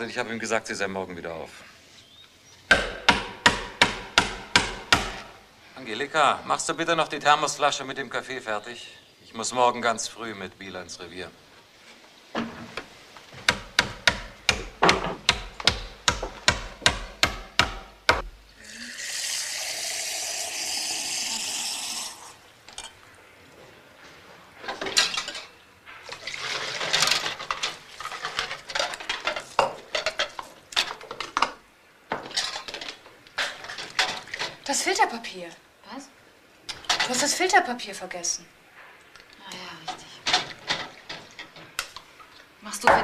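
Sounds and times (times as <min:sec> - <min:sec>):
sharp knocks: 0:02.7 - 0:05.4, 0:13.4 - 0:18.3
plates and cutlery clattering: 0:24.7 - 0:25.6, 0:26.6 - 0:31.6, 0:32.2 - 0:34.6, 0:39.9 - 0:41.8.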